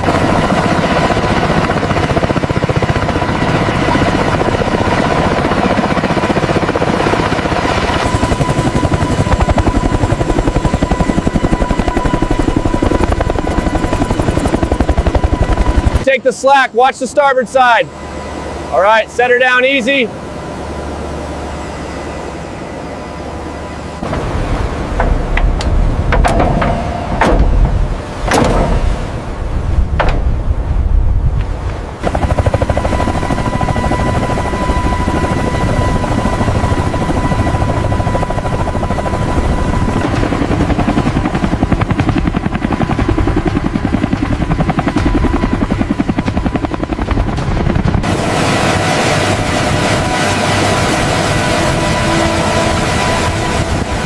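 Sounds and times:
helicopter blade chop: 0.0s - 22.8s, 24.0s - 30.5s, 31.4s - 54.0s
helicopter turbine whine: 0.0s - 54.0s
heavy thuds: 24.0s - 30.6s.

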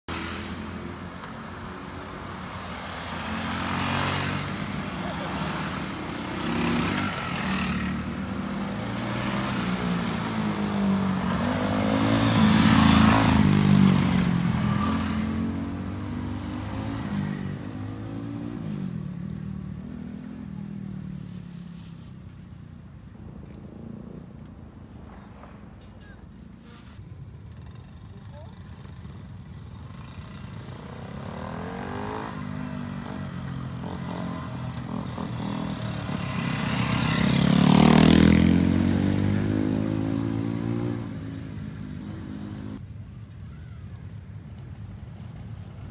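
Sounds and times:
minibike engines riding past: 0.1s - 45.9s.

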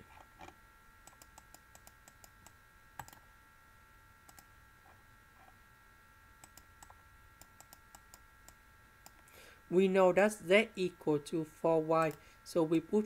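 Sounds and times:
faint high whine: 0.0s - 13.0s.

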